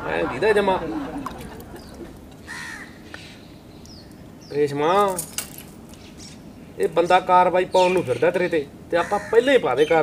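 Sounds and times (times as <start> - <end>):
bird calling: 0.0 - 4.6, 7.7 - 10.0.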